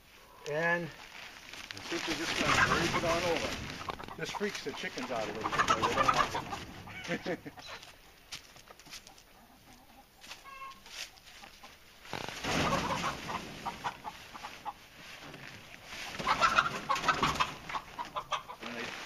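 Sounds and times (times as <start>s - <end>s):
plastic sheeting rustling: 1.0s - 5.4s, 12.0s - 16.3s, 18.6s - 19.0s
chickens clucking and squawking: 2.0s - 19.0s.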